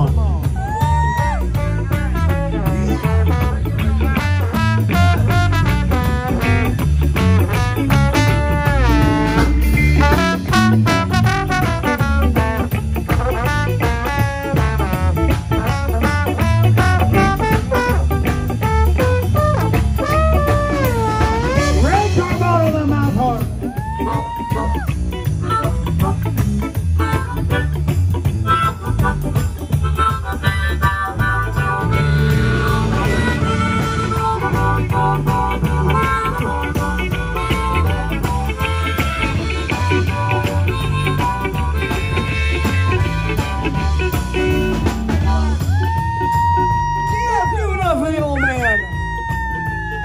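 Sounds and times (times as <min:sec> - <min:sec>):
live blues band playing: 0:00.0 - 0:50.0
trombone sliding solo: 0:01.5 - 0:22.6, 0:28.5 - 0:45.7.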